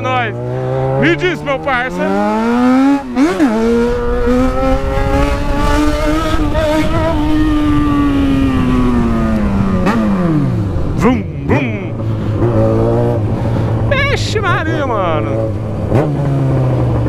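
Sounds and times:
motorcycle engine revving: 0:00.0 - 0:17.0.

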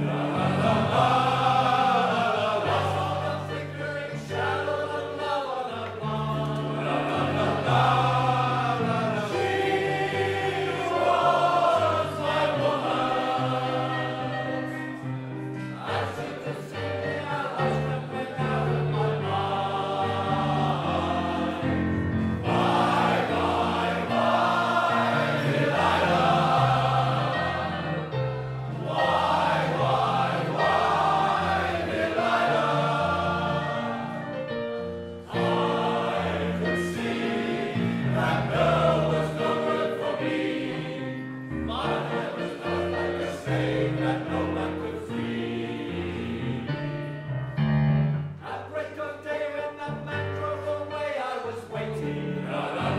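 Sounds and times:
male choir singing: 0:00.0 - 0:46.9, 0:48.4 - 0:52.9.

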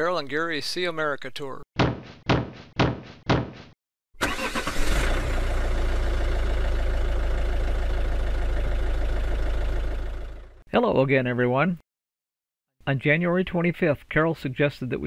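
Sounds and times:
vehicle engine starting and idling: 0:04.2 - 0:10.6.

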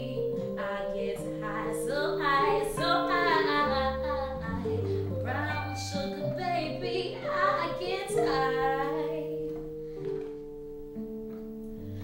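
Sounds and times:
woman singing with vibrato: 0:00.0 - 0:09.5
electronic keyboard chords: 0:00.0 - 0:12.0.

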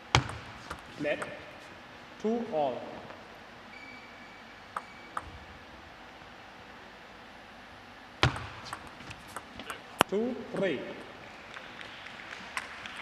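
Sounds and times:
table tennis ball clicking: 0:04.8 - 0:05.3, 0:08.2 - 0:10.7.

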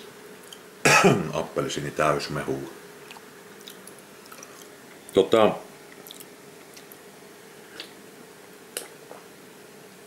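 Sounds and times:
faint chewing: 0:03.0 - 0:05.2, 0:05.9 - 0:08.0.

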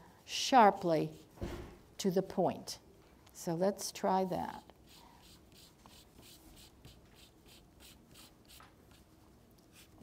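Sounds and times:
pastel scratching on paper: 0:04.9 - 0:09.1.

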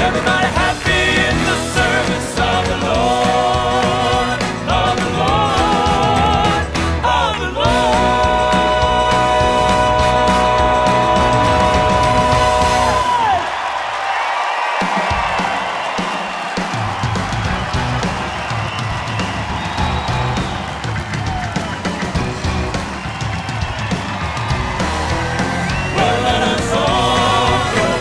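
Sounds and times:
held vocal chord: 0:00.0 - 0:13.5, 0:25.8 - 0:28.0
live gospel band: 0:00.0 - 0:13.9, 0:14.5 - 0:28.0
audience cheering and whooping: 0:00.0 - 0:28.0.

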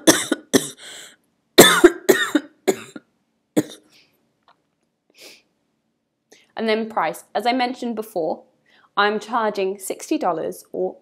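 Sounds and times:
woman coughing: 0:00.0 - 0:00.9, 0:01.6 - 0:03.9
breath in: 0:00.8 - 0:01.2.

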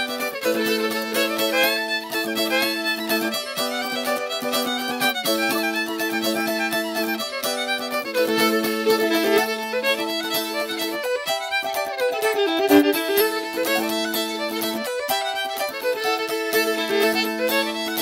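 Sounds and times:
fiddle tune: 0:00.0 - 0:18.0.

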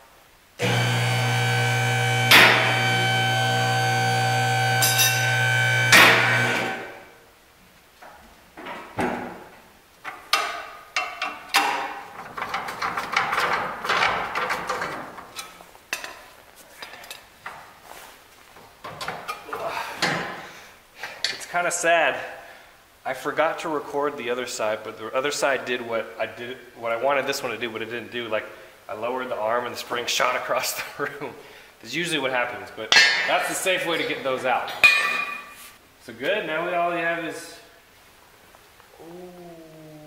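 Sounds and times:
steady machine hum: 0:00.6 - 0:07.0
sharp metallic clanks: 0:04.8 - 0:05.3.

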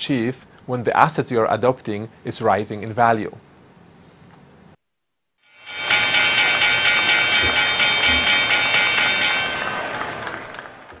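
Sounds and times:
synthesized pulsing chord: 0:05.5 - 0:09.8.

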